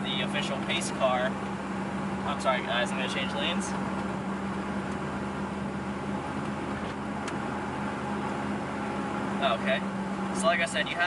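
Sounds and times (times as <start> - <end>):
car engine droning: 0.0 - 11.0
road noise: 0.0 - 11.0.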